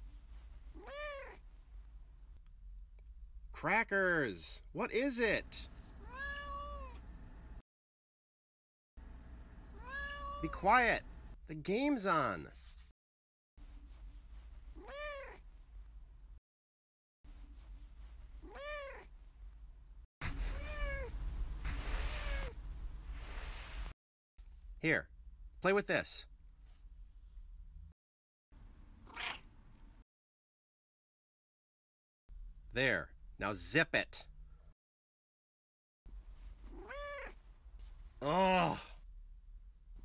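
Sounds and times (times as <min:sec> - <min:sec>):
cat meowing: 0:00.8 - 0:01.4, 0:06.0 - 0:07.0, 0:09.8 - 0:10.5, 0:14.8 - 0:15.4, 0:18.4 - 0:19.1, 0:20.5 - 0:21.1, 0:21.9 - 0:22.6, 0:29.1 - 0:29.5, 0:36.7 - 0:37.4.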